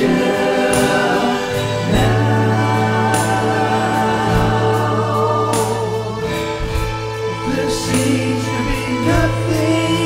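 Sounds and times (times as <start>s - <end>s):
music backing: 0.0s - 10.0s
person singing slow song: 0.0s - 10.0s.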